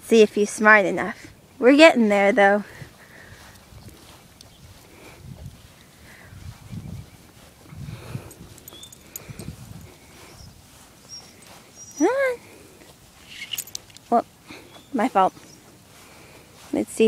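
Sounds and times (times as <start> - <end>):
footsteps on grass: 0.6 - 17.0.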